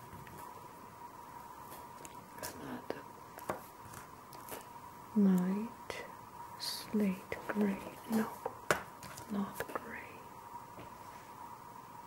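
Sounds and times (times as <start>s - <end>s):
woman whispering: 2.4s - 3.0s, 5.2s - 8.4s, 9.3s - 10.3s
faint steady tone: 4.2s - 8.5s, 9.2s - 12.0s.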